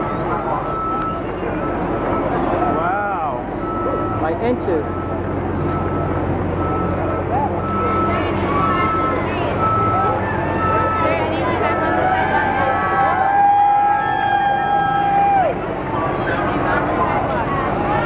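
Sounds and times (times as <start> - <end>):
vehicle warning beeper: 0.0 - 13.0
crowd voices: 0.0 - 18.0
low machinery drone: 0.0 - 18.0.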